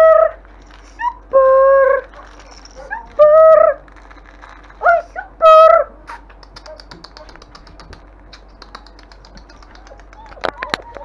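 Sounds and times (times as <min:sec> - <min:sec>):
puppies whining: 0:00.0 - 0:11.0.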